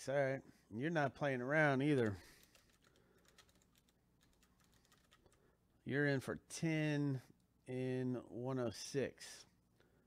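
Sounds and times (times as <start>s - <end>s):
computer keyboard typing: 2.0s - 5.4s.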